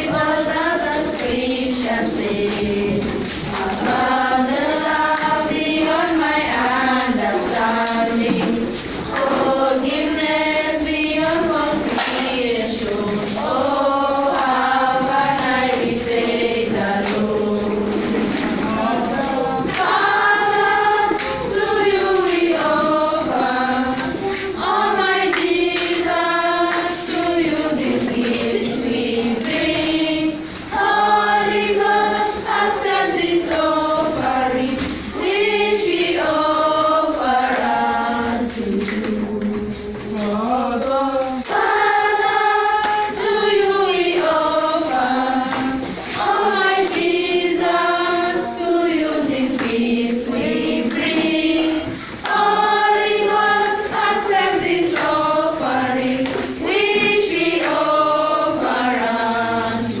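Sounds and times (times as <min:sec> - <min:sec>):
children singing unaccompanied: 0:00.0 - 1:00.0.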